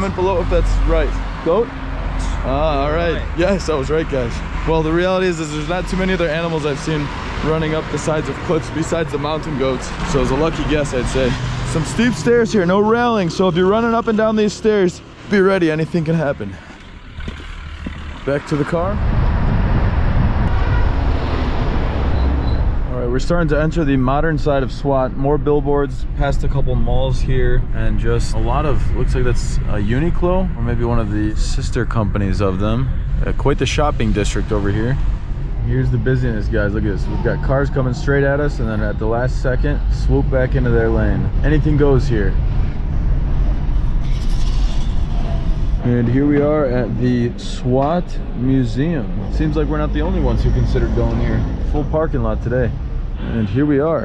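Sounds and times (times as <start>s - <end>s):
car engine and tyre rumble: 0.0s - 54.0s
wind noise: 17.0s - 37.0s.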